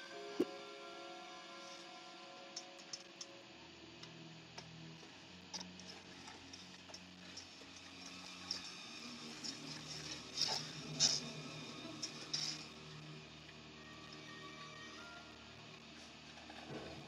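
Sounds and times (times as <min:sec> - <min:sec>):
low sustained music notes: 0:00.0 - 0:17.0.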